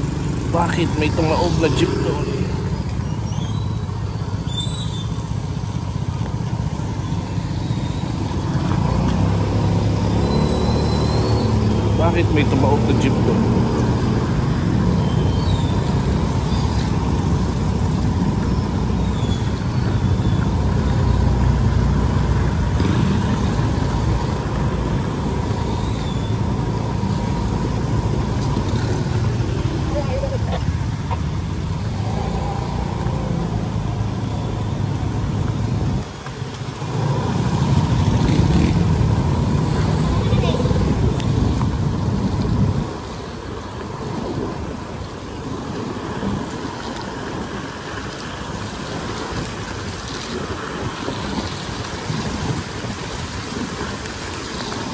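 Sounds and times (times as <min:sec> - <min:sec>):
vehicle road noise on wet road: 0:00.0 - 0:54.9
wind rushing over microphone: 0:00.0 - 0:54.9.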